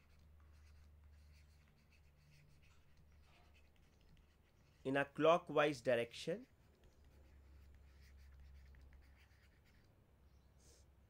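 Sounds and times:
stylus scratching while writing: 0:00.0 - 0:05.2, 0:06.0 - 0:10.0.

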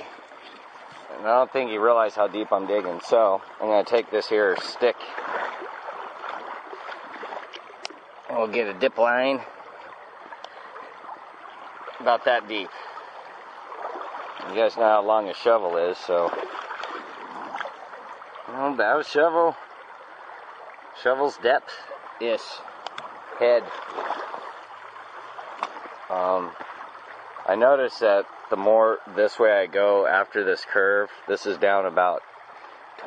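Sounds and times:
creek water running over gravel: 0:00.0 - 0:33.0.

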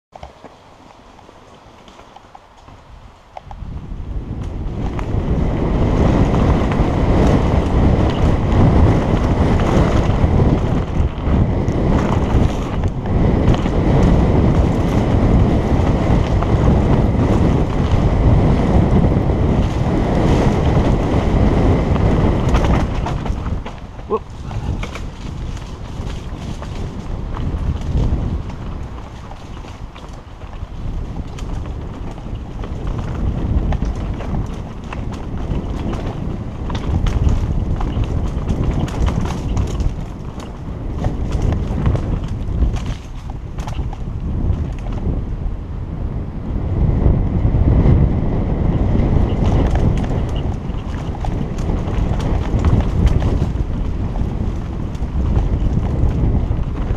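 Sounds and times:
tyres rumbling over dirt: 0:00.1 - 0:56.9
wind buffeting microphone: 0:00.1 - 0:56.9.

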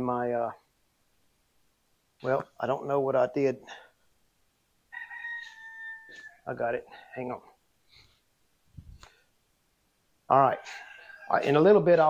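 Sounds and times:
rooster crowing: 0:04.9 - 0:06.5, 0:10.4 - 0:11.7.

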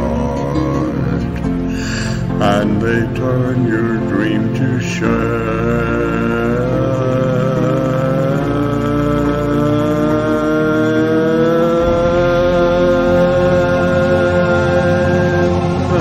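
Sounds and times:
held organ-like synth notes: 0:00.0 - 0:16.0
slow ballad backing track: 0:00.0 - 0:16.0.

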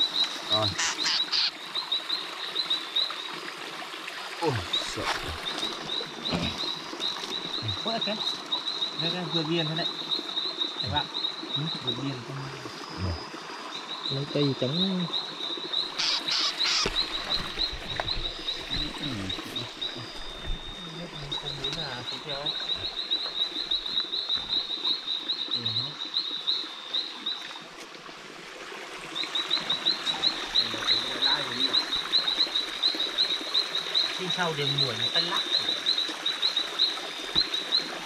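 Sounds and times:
high-pitched animal chirps: 0:00.7 - 0:01.5, 0:16.0 - 0:17.0.

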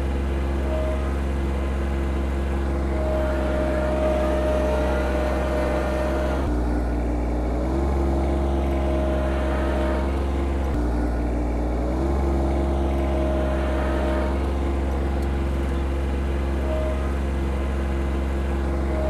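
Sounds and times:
garden tractor engine running: 0:00.0 - 0:19.0
thin whine: 0:00.0 - 0:19.0.

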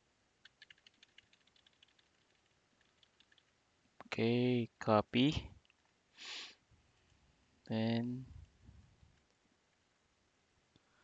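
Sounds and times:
rapid keyboard typing: 0:00.4 - 0:03.6.

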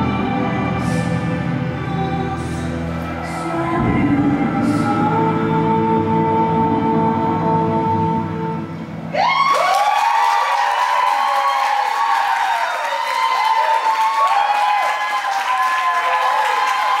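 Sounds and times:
music: 0:00.0 - 0:17.0
whoops and cheers: 0:09.1 - 0:17.0
audience clapping: 0:09.4 - 0:17.0.

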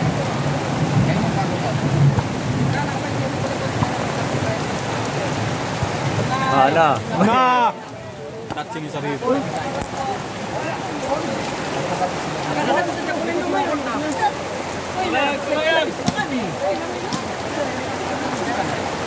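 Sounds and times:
people talking and calling out: 0:00.0 - 0:19.0
steady rain falling: 0:00.0 - 0:19.0.

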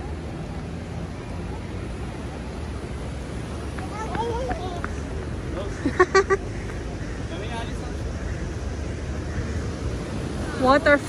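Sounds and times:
passers-by talking: 0:00.0 - 0:11.0.

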